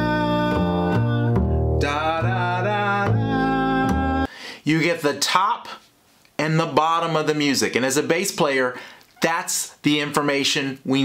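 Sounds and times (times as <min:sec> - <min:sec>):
double bass walking line: 0:00.0 - 0:04.3.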